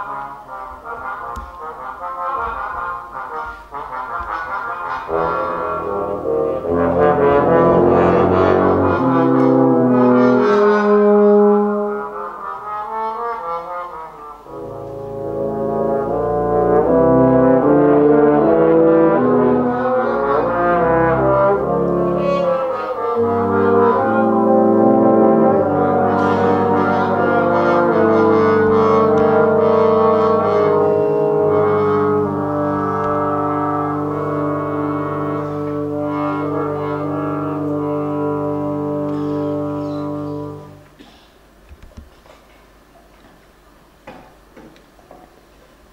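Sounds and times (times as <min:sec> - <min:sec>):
brass ensemble playing: 0:00.0 - 0:41.1.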